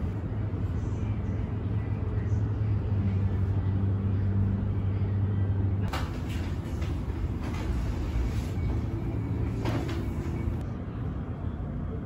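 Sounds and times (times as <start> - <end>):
rumbling background noise: 0.0 - 12.0
steady low hum: 0.0 - 12.0.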